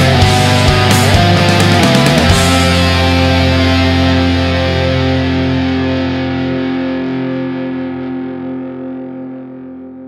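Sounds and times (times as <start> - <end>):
distorted electric guitar chord ringing: 0.0 - 10.0.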